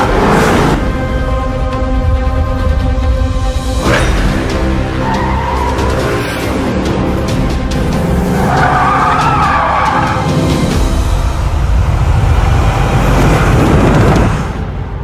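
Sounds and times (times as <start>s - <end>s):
music soundtrack: 0.0s - 15.0s
car engine: 3.7s - 15.0s
car tyres squealing: 5.0s - 6.4s, 8.3s - 10.4s.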